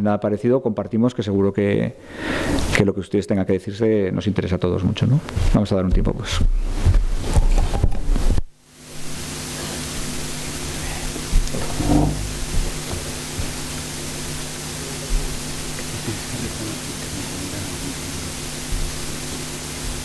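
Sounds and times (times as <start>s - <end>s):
low mains hum: 0.0s - 20.0s
electrical hiss: 2.0s - 2.9s, 6.6s - 20.0s
faint knock: 11.4s - 13.6s.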